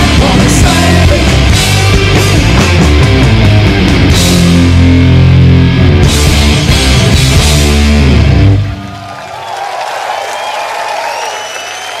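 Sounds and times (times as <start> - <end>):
heavy rock band playing: 0.0 - 9.0
guitar amplifier feedback: 1.3 - 8.9.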